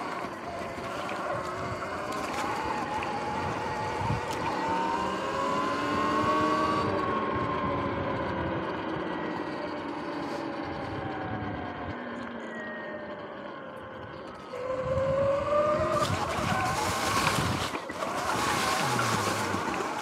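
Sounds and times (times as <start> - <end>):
tyre and wind noise: 0.0 - 8.4, 14.5 - 20.0
electric motorbike drivetrain whining: 0.0 - 20.0.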